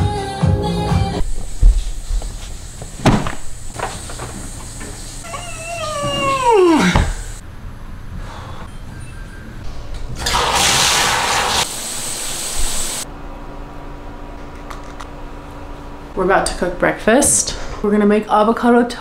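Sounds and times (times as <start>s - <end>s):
water running into bathtub: 3.0s - 7.4s, 10.2s - 13.0s.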